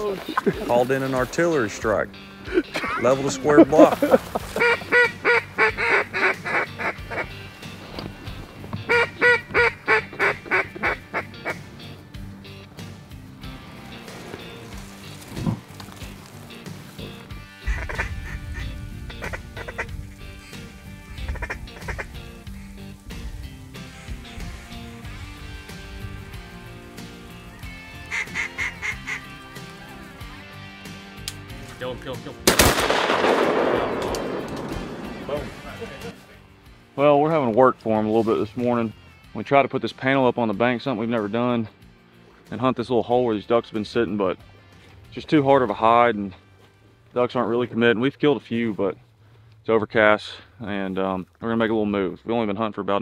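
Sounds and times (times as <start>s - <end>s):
background music: 0.0s - 53.0s
rapid duck quacks: 4.6s - 7.4s, 8.9s - 11.6s, 17.6s - 20.0s, 21.1s - 22.3s, 28.1s - 29.3s.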